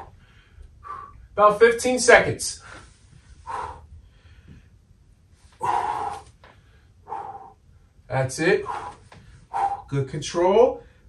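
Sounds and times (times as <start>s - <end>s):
man exhaling forcefully: 3.4s - 3.9s, 5.6s - 6.4s, 7.0s - 7.6s, 8.6s - 9.9s.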